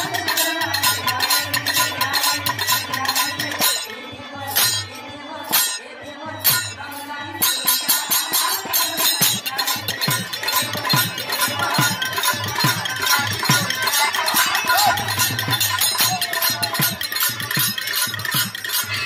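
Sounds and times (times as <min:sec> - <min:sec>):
jingling hand cymbals: 0:00.0 - 0:19.0.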